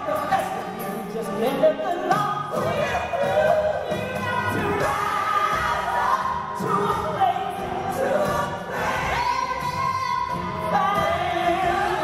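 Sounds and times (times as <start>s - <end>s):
woman singing: 0.0s - 12.0s.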